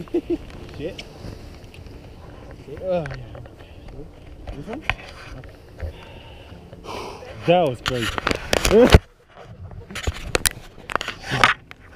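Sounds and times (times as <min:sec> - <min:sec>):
person breathing: 0:05.7 - 0:07.4.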